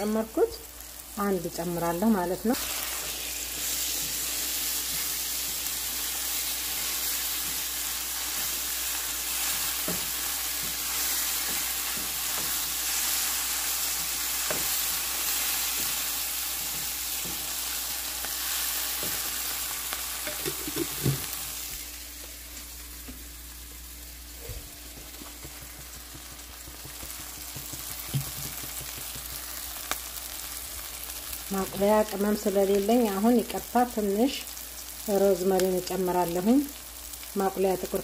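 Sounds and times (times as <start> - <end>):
paste sizzling in a pan: 0.5 - 31.8
wooden spoon knocking pan: 24.9 - 29.5.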